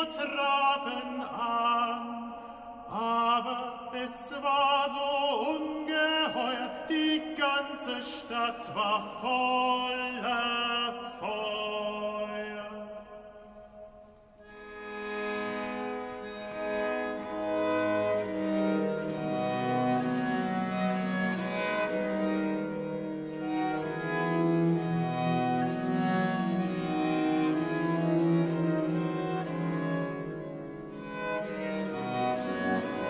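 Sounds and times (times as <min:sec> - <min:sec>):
bowed string instruments: 0:14.4 - 0:33.0.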